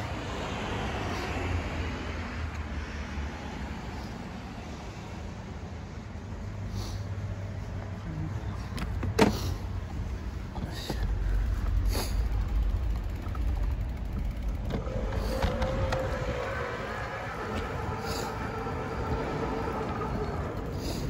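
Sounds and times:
wind rumble on microphone: 11.0s - 21.0s.

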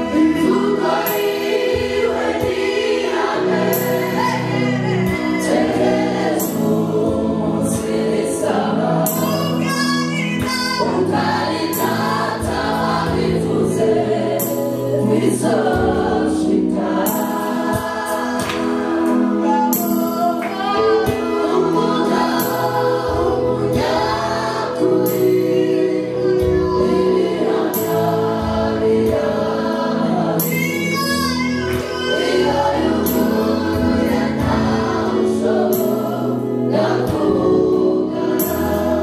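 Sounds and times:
choir singing gospel song: 0.0s - 39.0s
woman singing into microphone: 3.4s - 6.7s, 9.0s - 13.5s, 14.5s - 28.0s, 30.3s - 35.2s.

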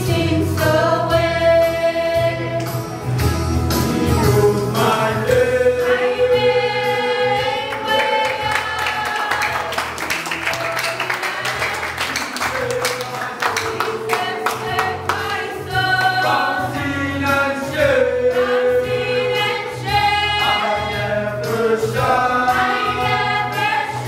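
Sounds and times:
choir singing gospel song: 0.0s - 24.0s.

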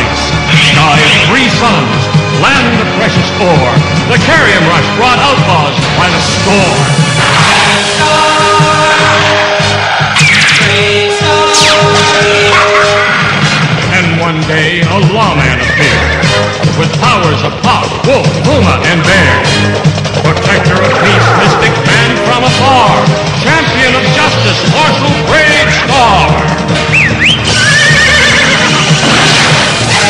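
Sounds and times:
cartoon theme music: 0.0s - 30.0s
horse whinnying: 15.4s - 16.5s, 20.4s - 22.1s, 26.8s - 30.0s.

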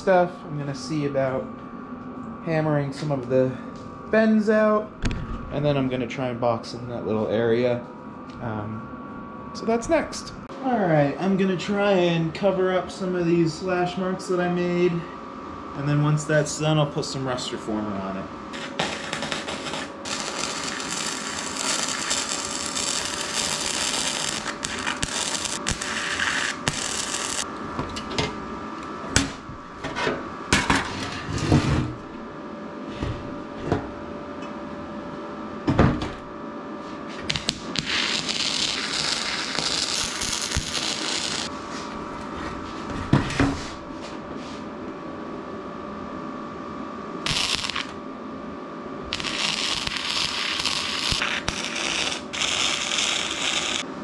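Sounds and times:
welder hissing: 18.6s - 27.5s, 37.3s - 41.5s, 47.2s - 48.0s, 49.1s - 53.8s.

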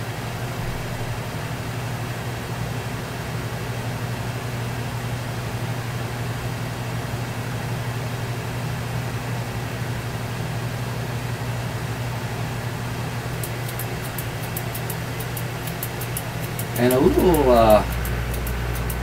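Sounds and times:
steady low hum with hiss: 0.0s - 19.0s.

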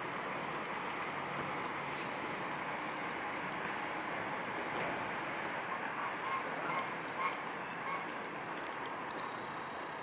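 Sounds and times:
swans honking: 5.9s - 8.2s.

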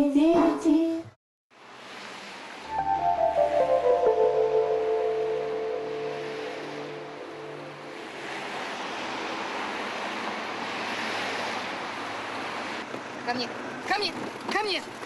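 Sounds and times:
rushing outdoor noise: 1.5s - 15.0s
held notes of song: 2.7s - 8.5s.

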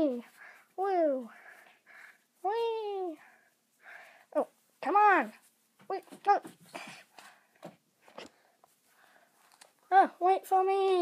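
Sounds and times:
cloth rustling against microphone: 0.0s - 11.0s.

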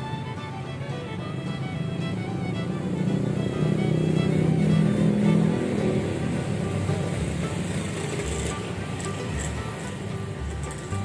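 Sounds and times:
background music: 0.0s - 11.0s
street traffic: 0.0s - 11.0s
vehicle engine rumble passing: 0.0s - 11.0s.

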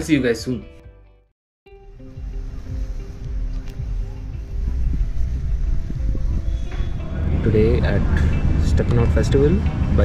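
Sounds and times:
faint music: 1.7s - 10.0s
wind buffeting microphone: 2.7s - 10.0s.

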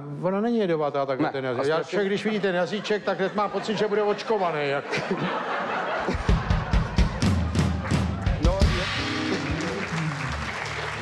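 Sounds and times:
audience applauding: 6.1s - 11.0s
band playing low held notes: 6.2s - 11.0s.

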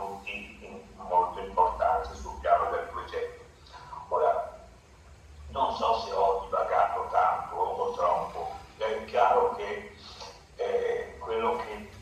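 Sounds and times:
man speaking over video call: 0.0s - 4.8s, 5.4s - 12.0s.

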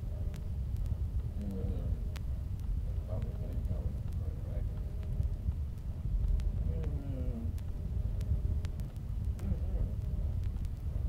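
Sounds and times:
low rumble: 0.0s - 11.0s
faint voice: 6.6s - 7.5s, 9.4s - 10.0s.

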